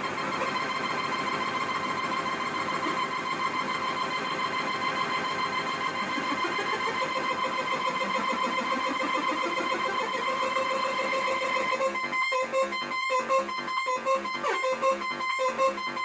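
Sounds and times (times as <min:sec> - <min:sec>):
buzzy square-wave synth tone: 0:05.1 - 0:16.0.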